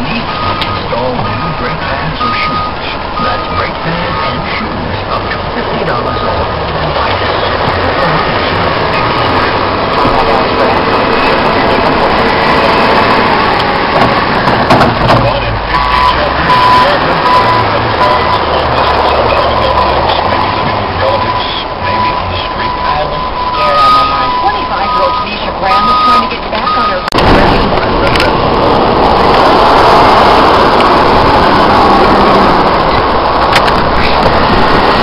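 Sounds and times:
reversing alarm beeping: 0:00.0 - 0:04.6, 0:06.0 - 0:13.2, 0:15.6 - 0:27.3
heavy equipment running: 0:00.0 - 0:35.0
loud blizzard wind: 0:00.0 - 0:35.0.

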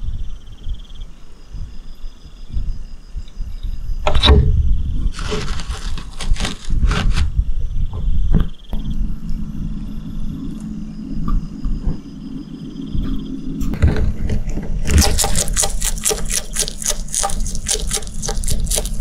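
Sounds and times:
steady low hum: 0:00.0 - 0:19.0
lizard crunching beetle shell: 0:14.8 - 0:19.0.

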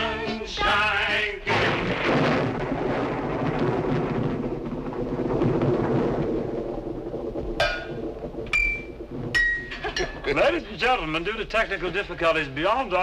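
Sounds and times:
rumbling drum roll: 0:01.3 - 0:12.2.

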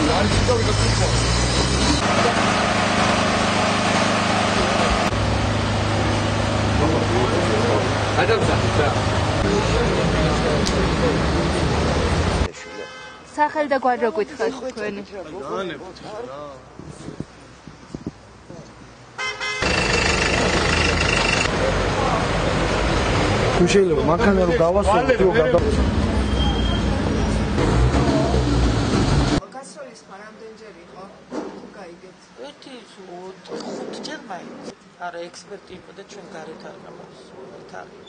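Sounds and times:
vehicle and street noise: 0:00.0 - 0:38.0
car horn toot: 0:19.2 - 0:20.0
engine idling: 0:19.6 - 0:21.8.

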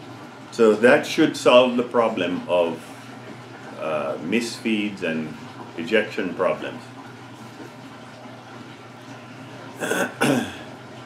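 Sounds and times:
man coughing: 0:09.8 - 0:10.7.

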